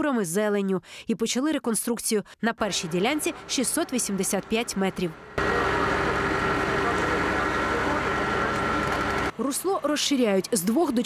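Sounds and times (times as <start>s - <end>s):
diesel engine running: 2.6s - 9.4s
steady whine: 2.7s - 9.4s.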